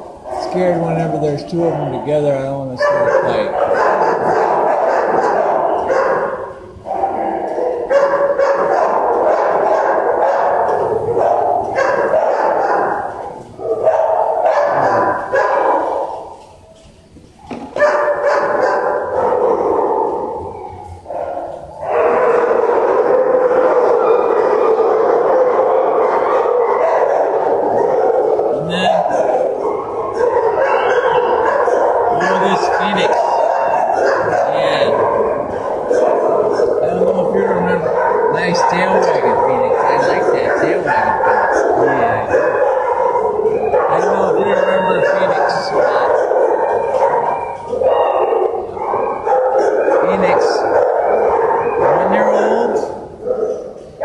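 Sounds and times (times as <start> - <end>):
dogs barking and yipping: 0.0 - 54.0.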